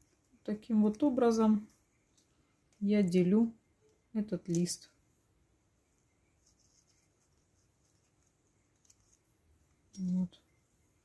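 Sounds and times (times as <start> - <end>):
faint rustle: 5.8 - 11.0.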